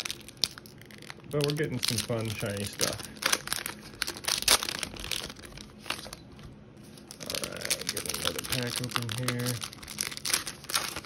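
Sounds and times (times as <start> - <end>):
plastic wrapper crinkling: 0.0 - 11.0.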